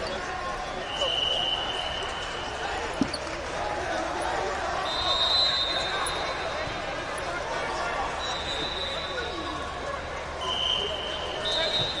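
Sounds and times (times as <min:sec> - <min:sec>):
crowd of many voices: 0:00.0 - 0:12.0.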